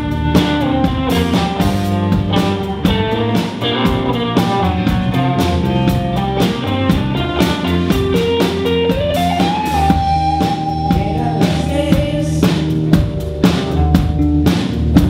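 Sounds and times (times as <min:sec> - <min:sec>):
rock band playing: 0:00.0 - 0:15.0.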